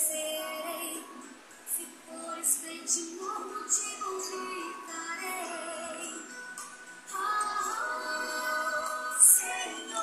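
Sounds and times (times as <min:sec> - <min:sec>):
woman singing worship music: 0:00.0 - 0:10.0.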